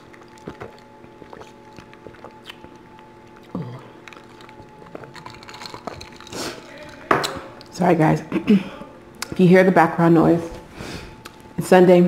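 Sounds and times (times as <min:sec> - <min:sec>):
steady hum of held tones: 0:00.0 - 0:12.0.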